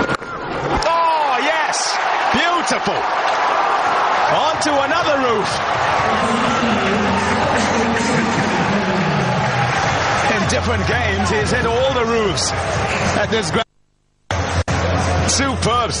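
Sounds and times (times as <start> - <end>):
crowd cheering: 0.0 - 13.6, 14.3 - 16.0.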